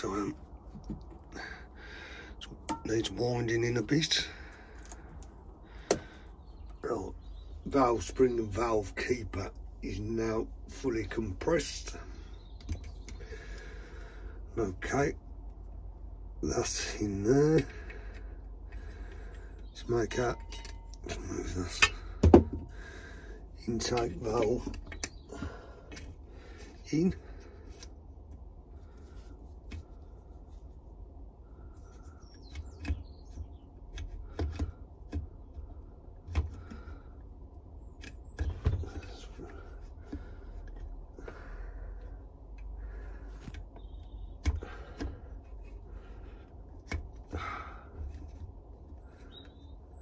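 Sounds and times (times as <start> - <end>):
man speaking: 0.0 - 0.4, 2.4 - 4.4, 6.8 - 12.0, 23.6 - 24.7, 26.8 - 27.3
low background hum: 0.0 - 50.0.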